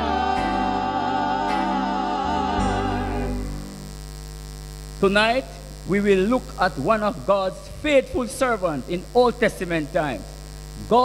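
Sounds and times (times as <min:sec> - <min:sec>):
group singing: 0:00.0 - 0:03.8
electrical hum: 0:00.0 - 0:11.0.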